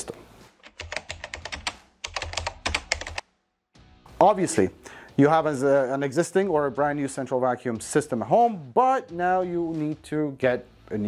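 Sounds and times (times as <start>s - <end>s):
keyboard typing clicks: 0.6s - 3.2s.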